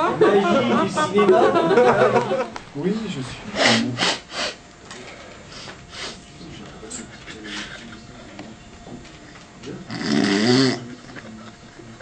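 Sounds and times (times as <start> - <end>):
man laughing: 0.0 - 2.5.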